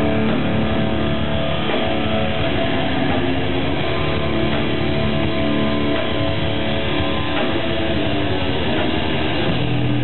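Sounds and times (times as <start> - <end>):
rock band playing heavy music: 0.0 - 10.0.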